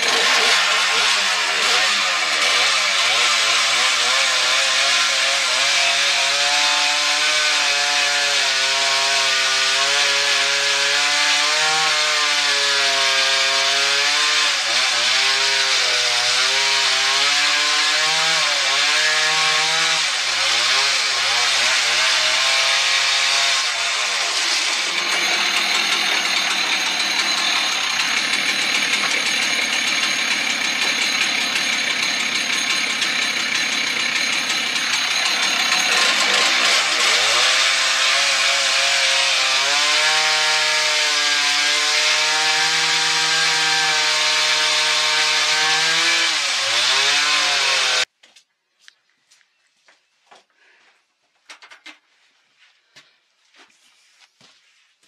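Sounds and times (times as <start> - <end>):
chainsaw cutting a log: 0.0 - 48.1.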